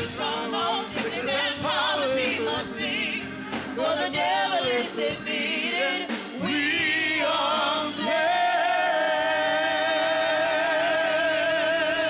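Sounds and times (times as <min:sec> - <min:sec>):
keyboard accompaniment: 0:00.0 - 0:12.0.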